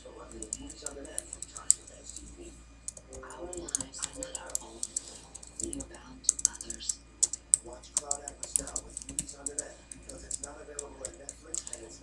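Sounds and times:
faint television speech: 0.0s - 12.0s
keyboard key clicks: 0.3s - 2.3s, 2.9s - 11.9s.

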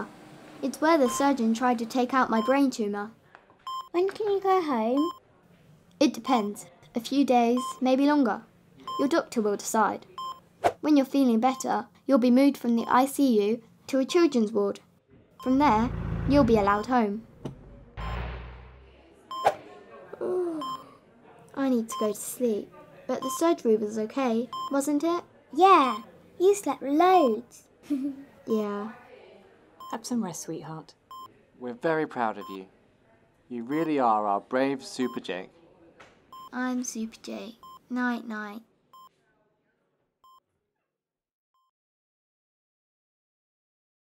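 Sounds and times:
patient monitor beeps: 1.0s - 1.4s, 2.4s - 2.6s, 3.7s - 4.0s, 5.0s - 5.2s, 7.6s - 7.8s, 8.8s - 9.2s, 10.2s - 10.4s, 15.4s - 16.0s, 19.3s - 19.6s, 20.6s - 20.9s, 21.9s - 22.2s, 23.2s - 23.5s, 24.5s - 24.8s, 32.4s - 32.6s, 33.7s - 34.0s, 35.0s - 35.3s, 36.4s - 36.6s, 37.6s - 37.8s
short electronic beep: 15.4s - 17.0s, 18.0s - 19.6s
whoosh sound effect: 15.5s - 19.6s.

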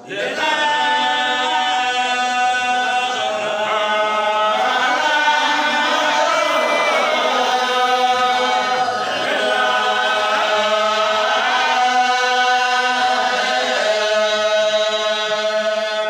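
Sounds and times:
group of voices chanting: 0.0s - 16.0s.

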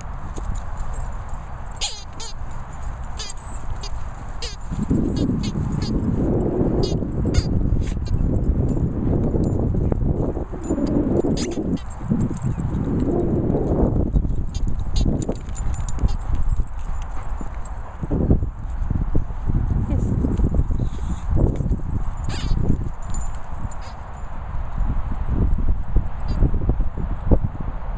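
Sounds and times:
dogs scuffling and thudding: 0.2s - 19.0s.

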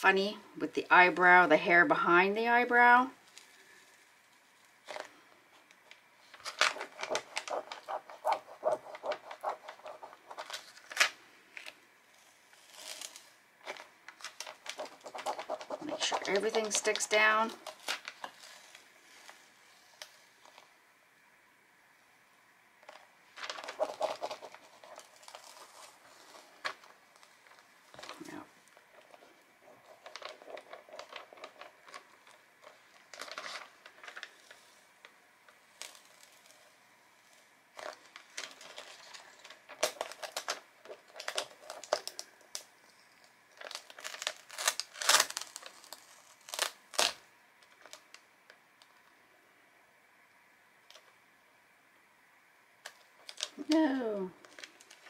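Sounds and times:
plastic sheet crinkling: 3.2s - 11.8s, 12.5s - 20.7s, 22.8s - 48.2s, 52.8s - 55.0s.

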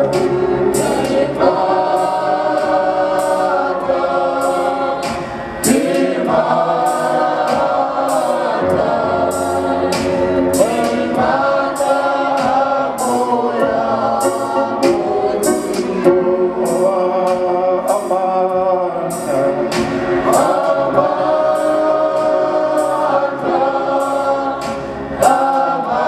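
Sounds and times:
choir singing in harmony: 0.0s - 26.0s
steady beat: 0.0s - 26.0s.

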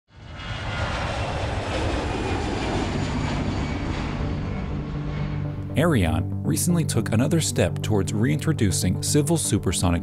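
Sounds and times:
aircraft engine rumble: 0.1s - 9.0s.

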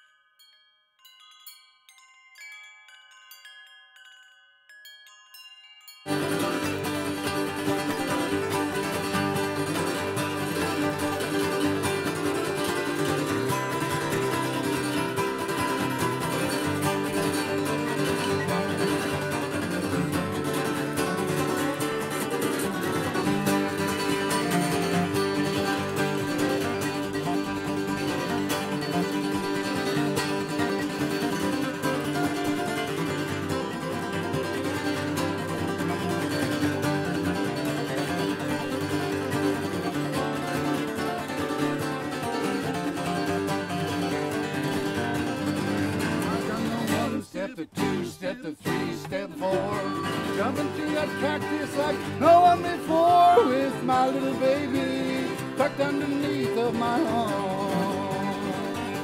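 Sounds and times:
acoustic guitar music: 6.1s - 59.0s.

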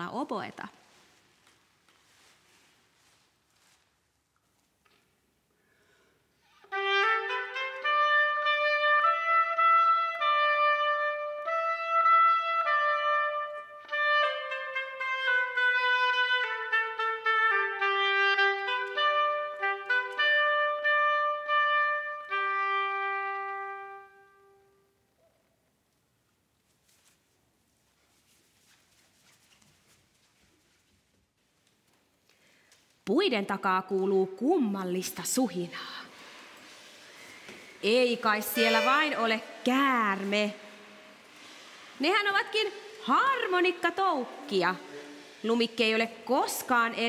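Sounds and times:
oboe playing slow melody: 6.6s - 24.9s, 38.6s - 39.2s.

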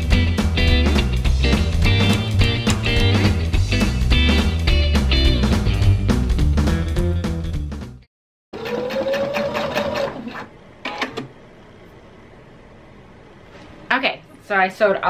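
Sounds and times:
guitar music with steady beat: 0.0s - 7.9s
sewing machine stitching: 8.6s - 11.3s.

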